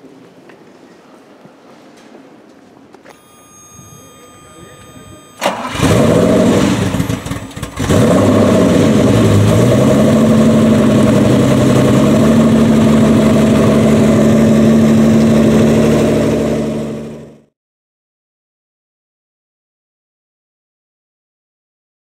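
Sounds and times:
car engine starting and revving: 0:04.8 - 0:17.5.

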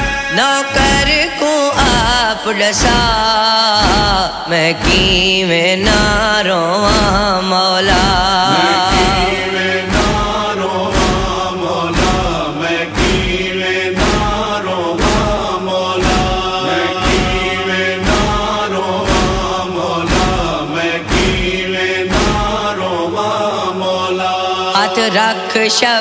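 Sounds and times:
male chorus chanting: 0:00.0 - 0:26.0
sharp chest-beating slaps: 0:02.8 - 0:07.3, 0:07.9 - 0:22.9.

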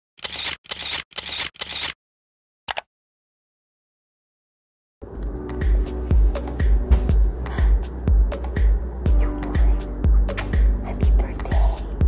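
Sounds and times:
camera shutter clicks: 0:00.2 - 0:02.0.

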